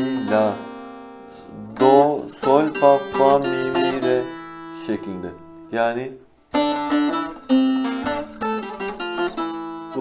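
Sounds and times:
long-necked lute plucked melody: 0.0s - 5.8s, 6.5s - 10.0s.

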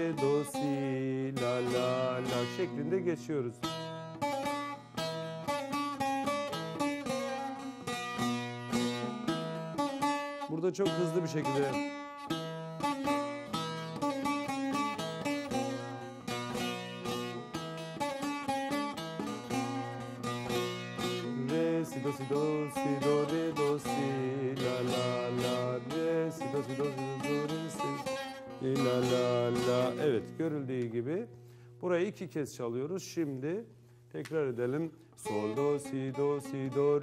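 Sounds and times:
long-necked lute melody: 0.0s - 31.7s, 34.9s - 37.0s.

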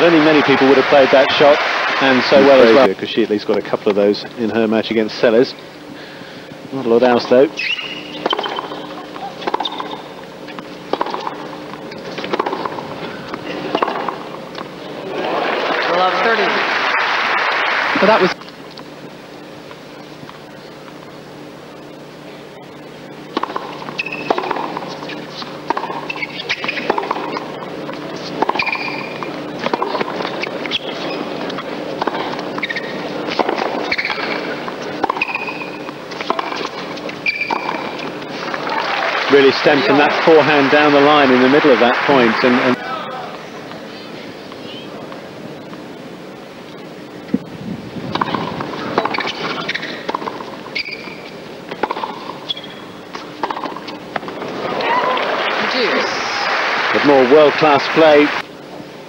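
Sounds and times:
crowd applause: 0.0s - 2.9s, 15.0s - 18.4s, 38.4s - 43.3s, 54.4s - 58.4s
crowd voices: 0.0s - 3.9s, 12.8s - 18.4s, 37.8s - 45.8s, 54.1s - 58.5s
tennis racket hitting ball: 8.2s - 14.2s, 23.3s - 27.5s, 28.2s - 30.8s, 31.5s - 38.7s, 48.1s - 50.5s, 51.2s - 52.6s, 53.2s - 54.4s.

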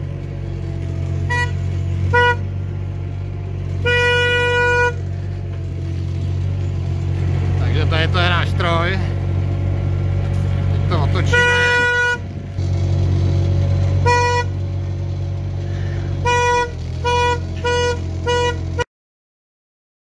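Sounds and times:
diesel engine running: 0.0s - 18.9s
horn tooting: 0.6s - 6.0s, 10.8s - 12.7s, 13.8s - 14.8s, 15.6s - 18.9s.

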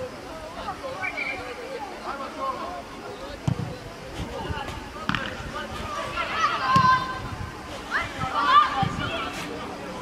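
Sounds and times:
football kick thud: 3.4s - 3.7s
young players shouting: 5.6s - 9.3s.

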